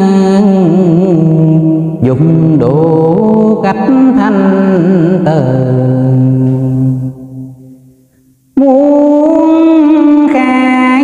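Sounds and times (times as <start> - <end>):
man chanting: 0.0 - 7.8, 8.6 - 11.0.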